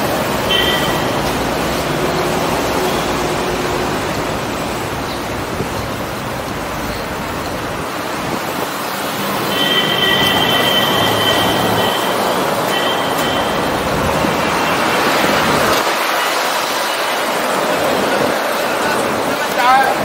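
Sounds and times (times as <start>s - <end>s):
passing road traffic: 0.0s - 20.0s
high squeal: 9.5s - 13.8s.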